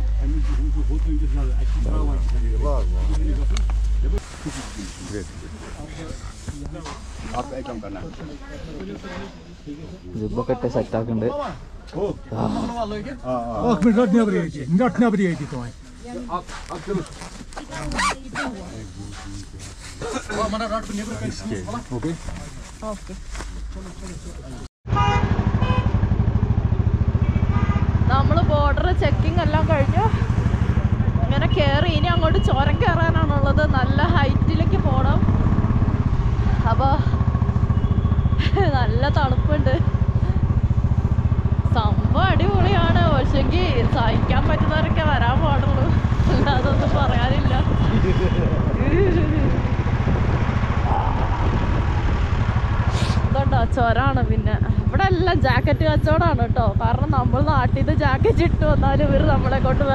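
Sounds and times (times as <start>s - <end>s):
motorcycle engine rumble: 24.9s - 59.9s
motorcycle engine idling: 33.1s - 47.8s.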